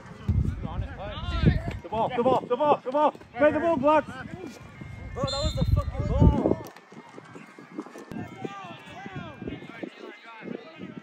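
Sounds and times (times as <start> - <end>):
overlapping calls across field: 4.7 - 6.5.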